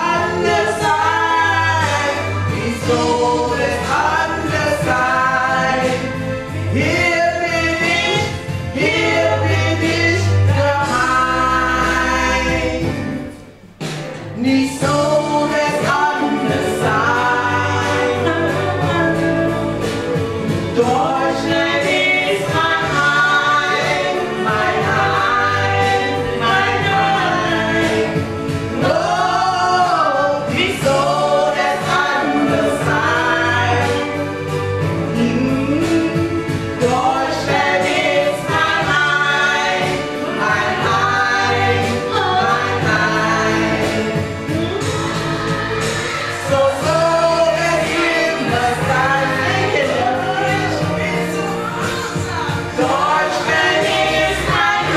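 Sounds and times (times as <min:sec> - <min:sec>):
women singing into microphones: 0:00.0 - 0:13.4, 0:14.4 - 0:54.9.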